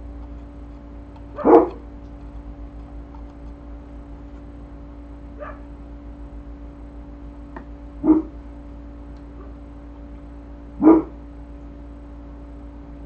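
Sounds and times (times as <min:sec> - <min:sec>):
steady low hum: 0:00.0 - 0:13.0
dog barking: 0:01.4 - 0:01.8, 0:05.4 - 0:05.7, 0:08.0 - 0:08.4, 0:10.8 - 0:11.2.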